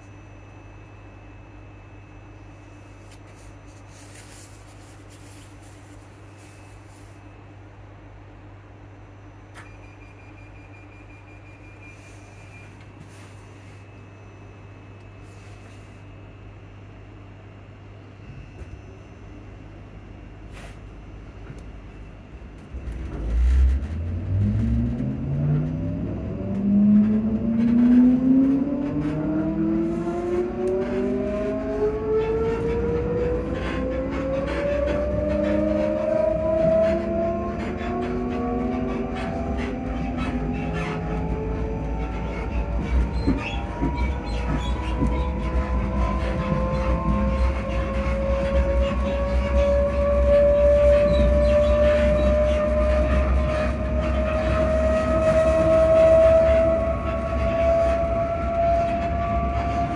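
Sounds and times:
train interior hum: 0:00.0 - 0:59.9.

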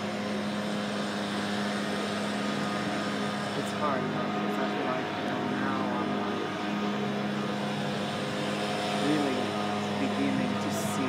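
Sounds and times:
city street traffic hum: 0:00.0 - 0:11.0
faint voices: 0:02.5 - 0:11.0.

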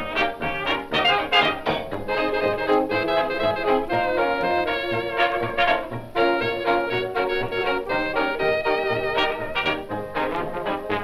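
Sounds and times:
dance band playing foxtrot: 0:00.0 - 0:11.0.

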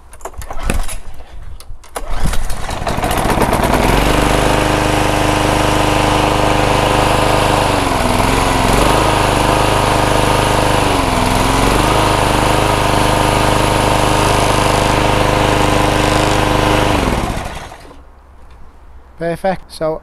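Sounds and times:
lawnmower engine pull-started: 0:01.8 - 0:18.0.

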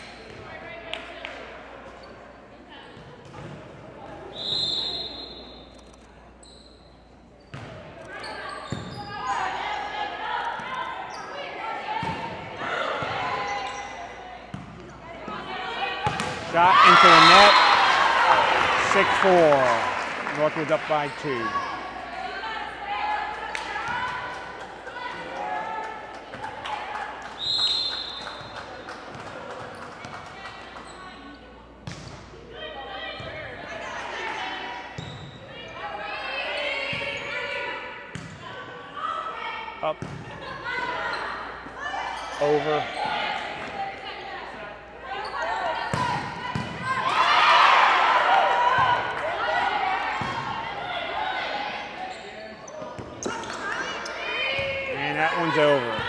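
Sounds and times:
voices of players and spectators: 0:00.0 - 0:56.0
referee's whistle blast: 0:04.3 - 0:05.7
players calling out: 0:15.2 - 0:26.2
spectators cheering: 0:16.5 - 0:21.7.

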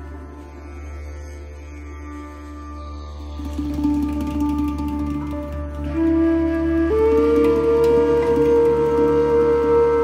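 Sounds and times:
long held flute note: 0:00.0 - 0:10.0.

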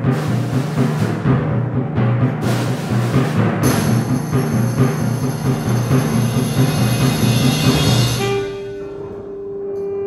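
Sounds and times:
concert band playing: 0:00.0 - 0:10.0.

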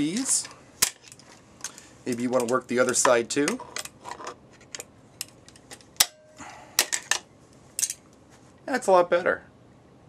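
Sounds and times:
faint metallic ring: 0:06.0 - 0:06.4.

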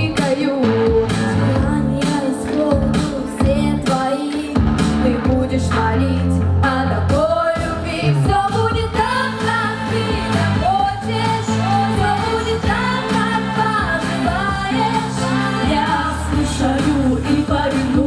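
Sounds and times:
steady bass line: 0:00.0 - 0:03.9, 0:04.6 - 0:18.0
instrumental backing: 0:00.0 - 0:18.0
women singing: 0:00.0 - 0:18.0.

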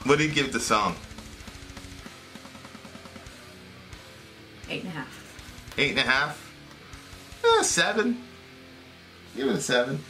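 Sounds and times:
faint guitar and drums music: 0:00.0 - 0:10.0.

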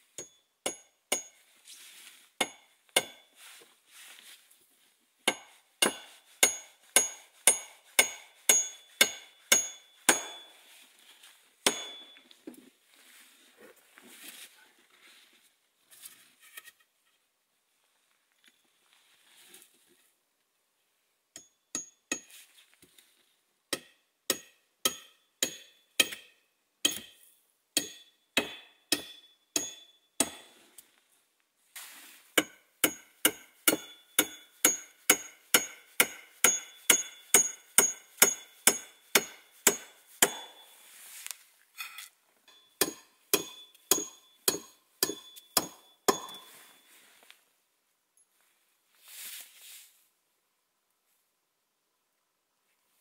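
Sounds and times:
hatchet hammering nail: 0:05.3 - 0:10.5, 0:11.7 - 0:12.0, 0:23.7 - 0:27.2, 0:27.8 - 0:30.4, 0:32.4 - 0:40.6, 0:42.8 - 0:46.4.

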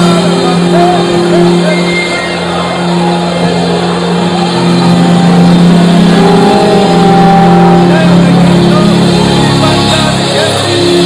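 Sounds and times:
background music chords: 0:00.0 - 0:11.0.

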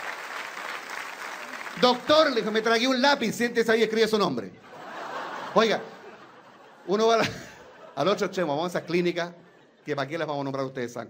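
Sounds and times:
audience applauding: 0:00.0 - 0:03.0
man talking: 0:01.8 - 0:04.6, 0:05.5 - 0:06.0, 0:06.9 - 0:11.0.

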